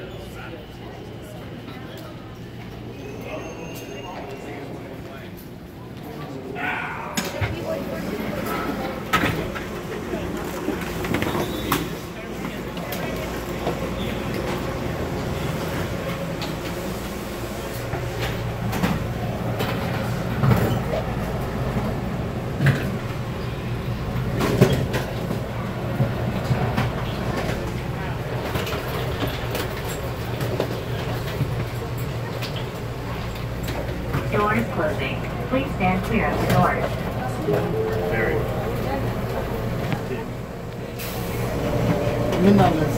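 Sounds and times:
people mover low hum: 31.0 - 42.9.

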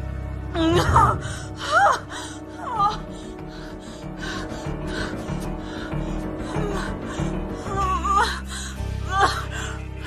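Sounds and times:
tense film score: 0.0 - 10.0.

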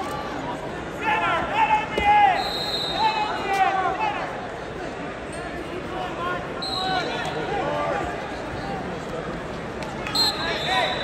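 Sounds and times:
arena crowd hubbub: 0.0 - 11.0.

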